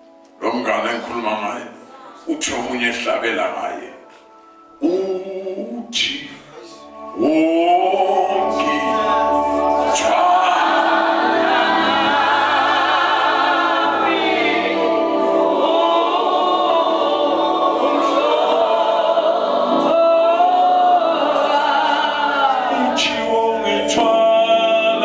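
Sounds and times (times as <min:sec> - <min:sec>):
group singing gospel: 0:07.2 - 0:25.0.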